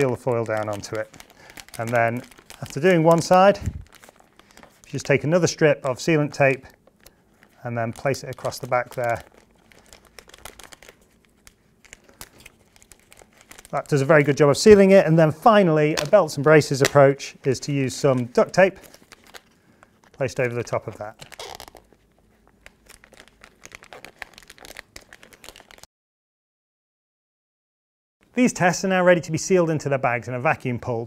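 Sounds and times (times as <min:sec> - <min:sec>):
plastic film crinkling: 0:00.0 - 0:15.2, 0:15.8 - 0:25.9.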